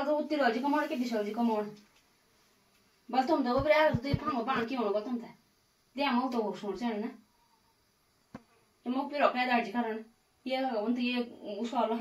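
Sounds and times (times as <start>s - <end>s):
woman speaking: 0.0s - 1.8s, 3.1s - 5.4s, 6.0s - 7.2s, 8.8s - 12.0s.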